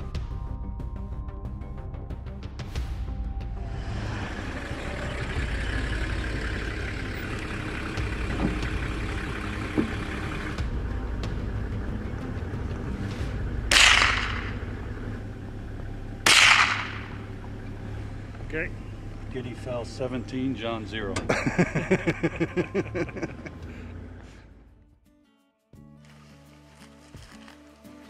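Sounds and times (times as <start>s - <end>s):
vehicle engine running: 0.0s - 25.0s
rifle shots: 13.7s - 14.6s, 16.2s - 17.2s.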